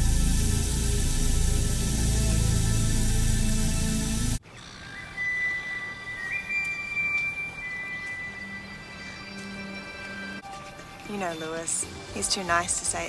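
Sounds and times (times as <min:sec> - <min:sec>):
soft background score music: 0:00.0 - 0:13.0.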